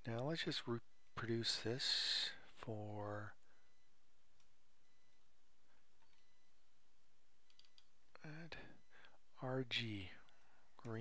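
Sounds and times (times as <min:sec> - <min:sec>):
low steady hiss: 0:00.0 - 0:11.0
computer keyboard keystrokes: 0:07.5 - 0:07.9.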